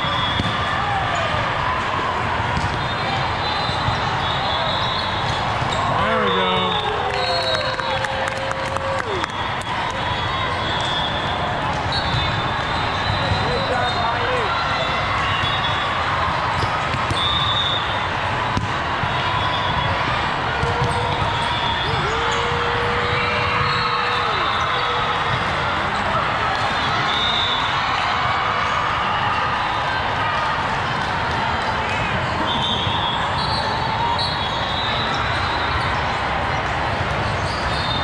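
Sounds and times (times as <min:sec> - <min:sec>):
volleyballs being hit: 0:18.5 - 0:18.8.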